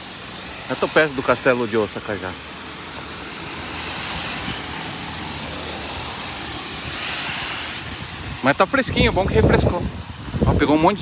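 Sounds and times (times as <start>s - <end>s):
rain hissing: 0.0s - 11.0s
wind rumbling on microphone: 3.8s - 11.0s.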